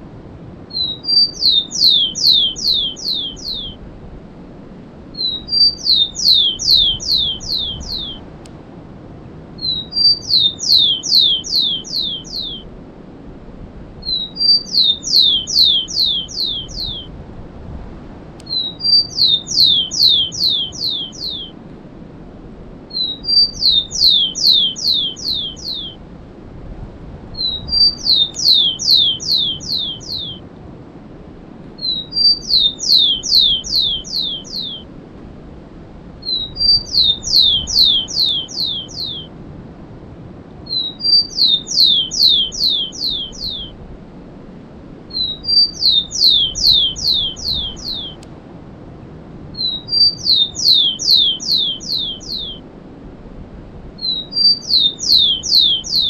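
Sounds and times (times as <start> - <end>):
sparrow singing: 0.7 - 3.8, 5.2 - 8.3, 9.6 - 12.7, 14.0 - 17.1, 18.4 - 21.6, 22.9 - 26.0, 27.4 - 30.4, 31.8 - 34.9, 36.2 - 39.3, 40.7 - 43.8, 45.1 - 48.2, 49.6 - 52.6, 54.0 - 56.0.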